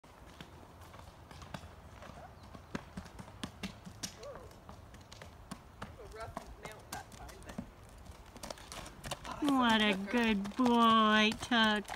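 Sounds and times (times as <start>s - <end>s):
horse hooves knocking on wood: 1.3s - 7.8s, 8.4s - 11.9s.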